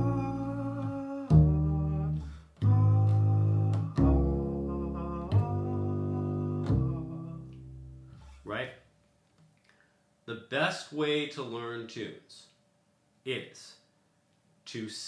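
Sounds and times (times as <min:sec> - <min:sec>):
man singing long notes: 0:00.0 - 0:07.7
plucked double bass: 0:00.0 - 0:08.3.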